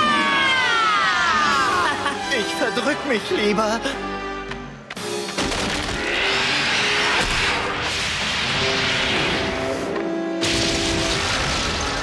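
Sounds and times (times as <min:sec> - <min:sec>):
orchestral film music: 0:00.0 - 0:10.9.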